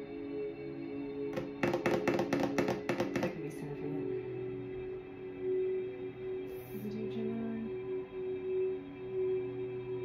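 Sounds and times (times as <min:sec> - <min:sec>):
ambient music: 0:00.0 - 0:10.0.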